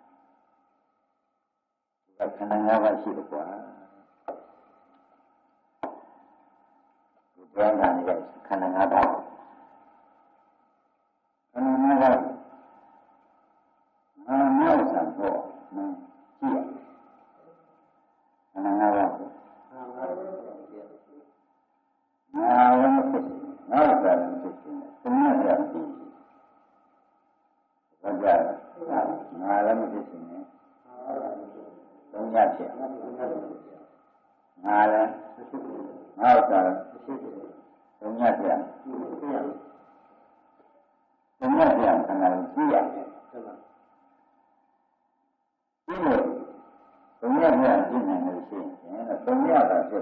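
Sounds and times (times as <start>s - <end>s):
man speaking: 2.2s - 4.5s, 7.4s - 9.4s, 11.6s - 12.4s, 14.2s - 16.9s, 18.6s - 21.2s, 22.4s - 26.2s, 28.0s - 33.8s, 34.6s - 39.7s, 41.4s - 43.6s, 45.9s - 46.6s, 47.2s - 50.0s
elderly man preaching: 2.2s - 4.8s, 7.4s - 10.1s, 11.6s - 13.1s, 14.2s - 17.8s, 18.6s - 21.3s, 22.4s - 26.6s, 28.0s - 39.8s, 41.4s - 43.8s, 45.9s - 50.0s.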